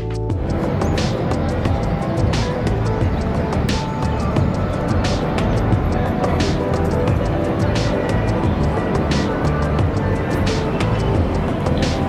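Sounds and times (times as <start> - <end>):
background music with low pulse: 0.0 - 12.0.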